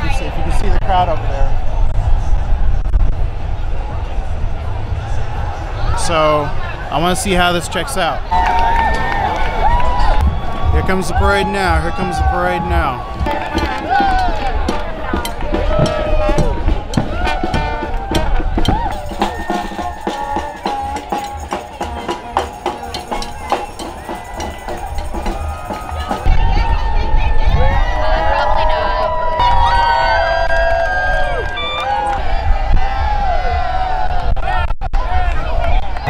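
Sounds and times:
crowd calling and cheering: 0:00.0 - 0:36.0
drumming: 0:10.2 - 0:26.4
marching music: 0:10.2 - 0:26.4.

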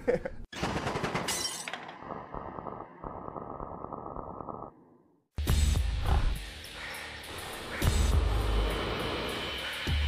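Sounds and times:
horror soundtrack music: 0:05.5 - 0:10.0.

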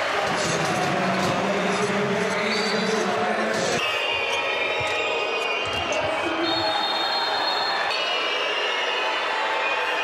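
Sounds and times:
loud arena crowd noise: 0:00.0 - 0:10.0.

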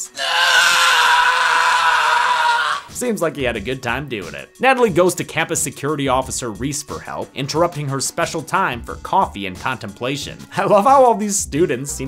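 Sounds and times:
man's long high yell: 0:00.1 - 0:02.9.

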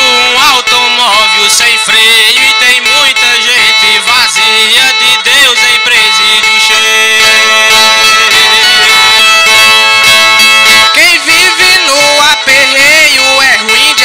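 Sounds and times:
man singing wavering verse: 0:00.0 - 0:07.6, 0:10.8 - 0:14.0.

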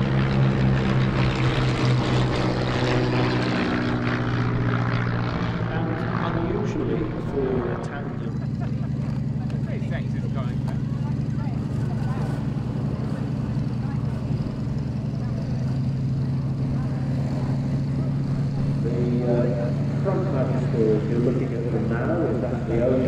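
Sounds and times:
propeller aircraft engines droning: 0:00.0 - 0:23.0
man's voice: 0:05.8 - 0:08.4, 0:18.8 - 0:23.0.

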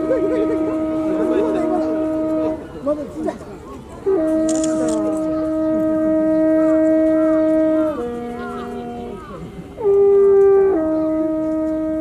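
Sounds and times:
natural horn held notes: 0:04.0 - 0:12.0.

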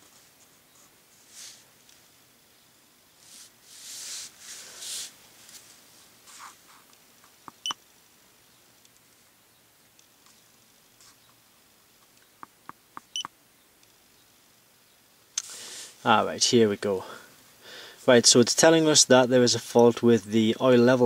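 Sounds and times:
electronic beeps from scan tool: 0:07.6 - 0:07.8.

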